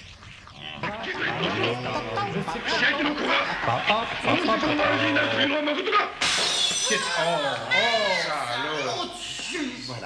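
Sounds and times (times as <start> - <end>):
recorded voices talking: 0.6 - 10.0
bright shattering crash: 6.2 - 7.2.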